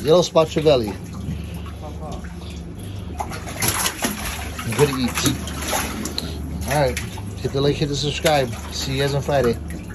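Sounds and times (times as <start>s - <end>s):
steady low hum: 0.0s - 9.9s
water churning in a tank: 0.0s - 9.9s
fish splashing at surface: 0.9s - 7.5s.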